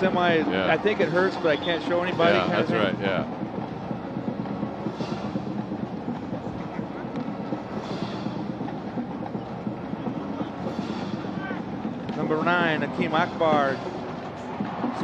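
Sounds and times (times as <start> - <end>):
stadium crowd murmur: 0.0 - 15.0.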